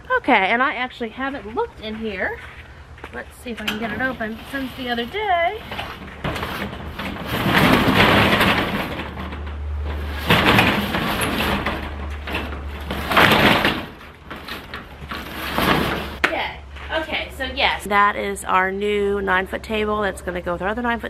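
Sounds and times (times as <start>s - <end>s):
metal roll-up door rattling: 3.6s - 16.2s.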